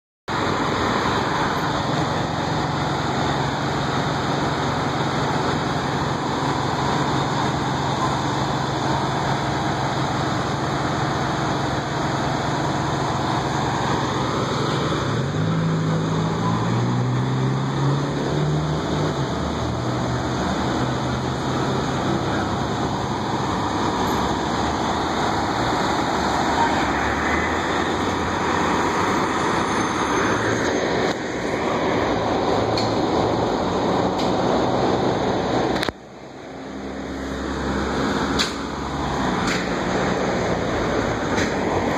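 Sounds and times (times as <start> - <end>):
diesel engine idling: 0.3 - 16.5, 18.2 - 41.9.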